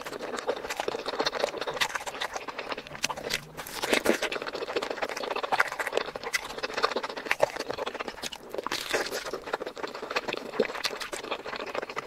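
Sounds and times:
wet chewing and mouth clicks: 0.0s - 12.0s.

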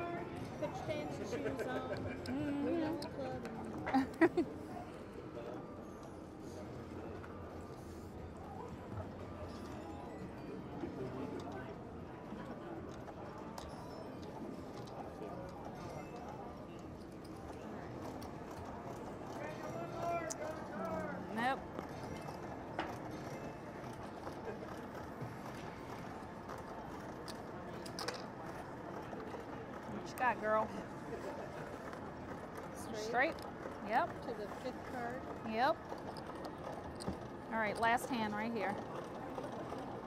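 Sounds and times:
casino machines: 0.0s - 40.0s
murmur of distant voices: 0.0s - 40.0s.

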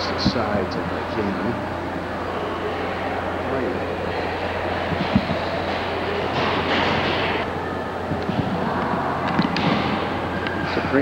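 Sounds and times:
low hum: 0.0s - 11.0s
echoing hall din: 4.0s - 11.0s.

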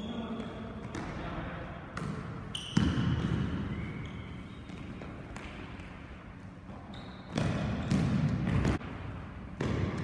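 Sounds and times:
sneaker squeaking on court floor: 2.0s - 8.8s.

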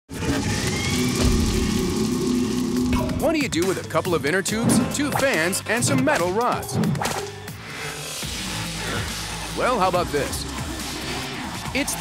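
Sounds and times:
engine-like drone with rising whine: 0.1s - 3.8s
soundtrack music: 0.1s - 12.0s.

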